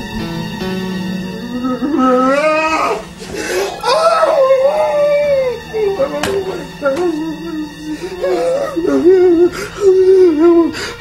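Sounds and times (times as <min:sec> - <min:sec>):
woman wailing in grief: 0:01.3 - 0:10.8.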